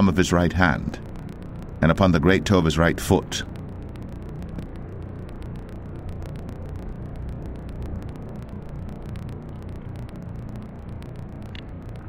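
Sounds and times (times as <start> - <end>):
low rumble: 0.0 - 12.0
steady rain falling: 0.0 - 12.0.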